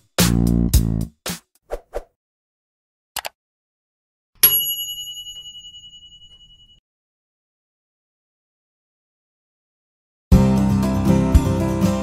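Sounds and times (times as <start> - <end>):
bright bell ding: 4.4 - 6.8.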